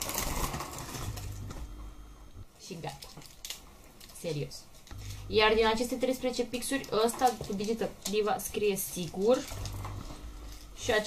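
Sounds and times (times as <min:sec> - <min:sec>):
plastic pens clattering: 0:06.6 - 0:08.2.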